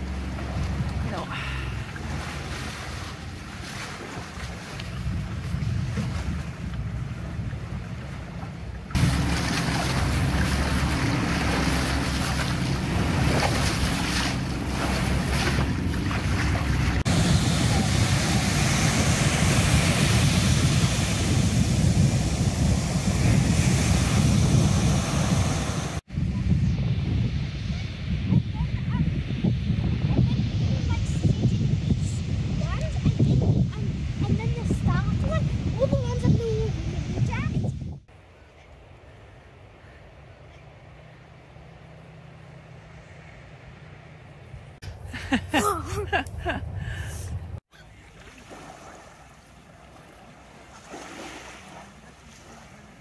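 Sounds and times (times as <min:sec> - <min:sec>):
water rushing past boat hull: 0:00.0 - 0:26.1, 0:47.7 - 0:53.0
wind buffeting microphone: 0:00.0 - 0:38.2.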